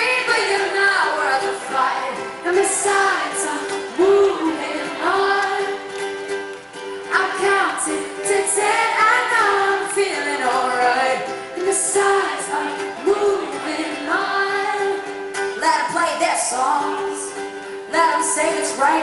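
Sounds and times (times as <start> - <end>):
woman singing: 0.0 - 5.9, 7.0 - 19.0
acoustic guitar: 0.0 - 19.0.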